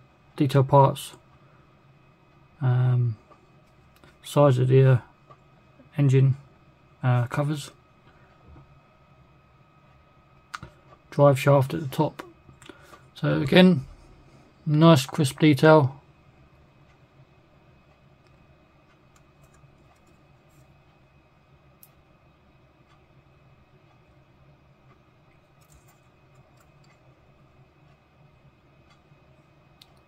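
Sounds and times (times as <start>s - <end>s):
soft plastic clicks: 27.8s - 30.0s.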